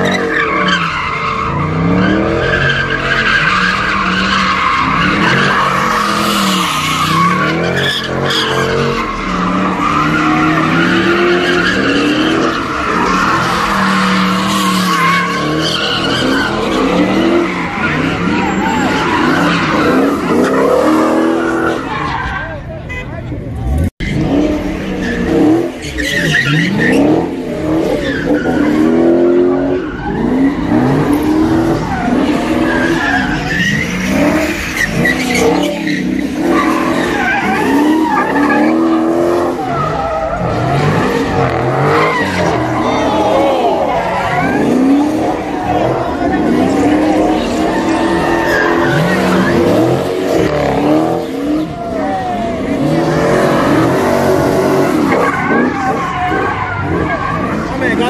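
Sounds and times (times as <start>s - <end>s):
car engines revving: 0.0s - 58.0s
tire squeal: 0.0s - 58.0s.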